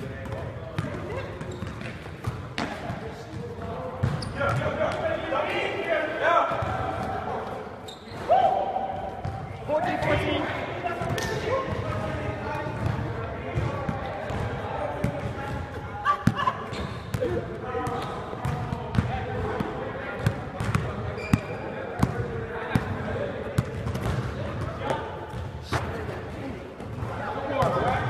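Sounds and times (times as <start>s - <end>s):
players calling out and chattering: 0.0s - 28.0s
basketball bouncing on a court: 0.2s - 4.8s, 6.5s - 7.0s, 9.2s - 10.2s, 11.0s - 15.6s, 16.2s - 22.2s.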